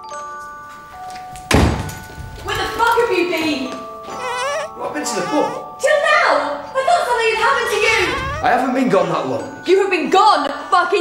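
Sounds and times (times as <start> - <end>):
soft chiming music: 0.0 - 11.0
door shutting with heavy thud: 1.5 - 2.1.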